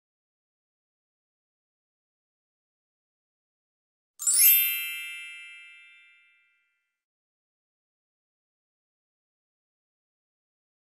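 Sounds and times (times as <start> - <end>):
bright chime: 4.2 - 6.8.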